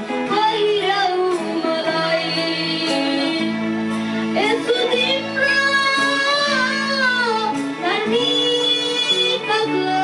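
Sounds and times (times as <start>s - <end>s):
boy singing into a microphone: 4.4s - 10.0s.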